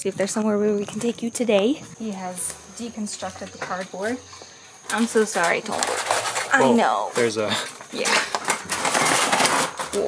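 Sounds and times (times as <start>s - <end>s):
wire cage rattling and clattering: 5.3s - 6.6s, 8.1s - 10.0s.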